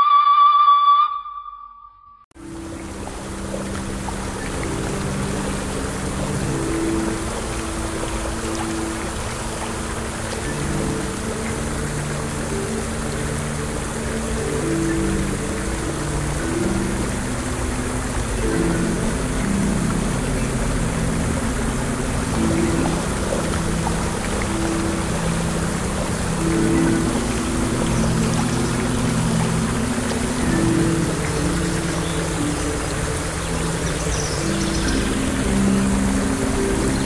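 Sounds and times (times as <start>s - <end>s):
flowing water rushing: 2.4s - 37.0s
soft low instrumental melody: 2.4s - 37.0s.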